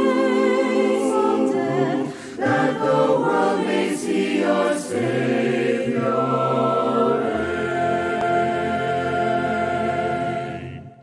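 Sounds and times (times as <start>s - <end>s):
choir singing: 0.0s - 11.0s
musical accompaniment: 0.0s - 11.0s.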